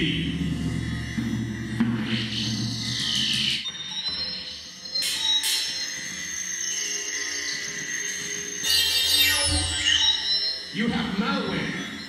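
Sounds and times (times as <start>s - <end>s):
electronic synthesizer music: 0.0s - 12.0s.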